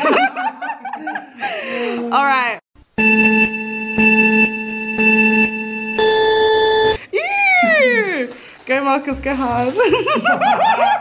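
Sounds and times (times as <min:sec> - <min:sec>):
short countdown beeps: 0:03.1 - 0:07.0
long high beep: 0:03.3 - 0:07.0.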